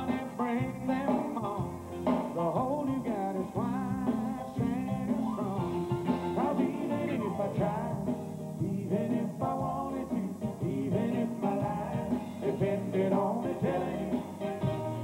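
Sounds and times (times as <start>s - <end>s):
country band playing: 0.0s - 15.0s
lead melody with sliding notes: 10.7s - 15.0s.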